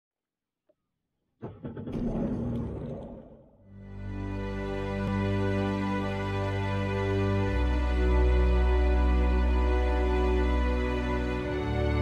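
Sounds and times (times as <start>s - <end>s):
music: 3.7s - 12.0s.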